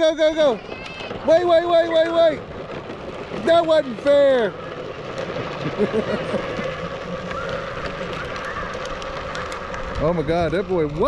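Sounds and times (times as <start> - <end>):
plastic wheels rolling on asphalt: 0.0 - 11.0.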